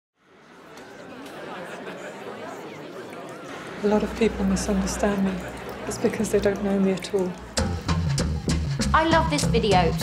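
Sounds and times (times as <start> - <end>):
babble of many voices: 0.2 - 7.8.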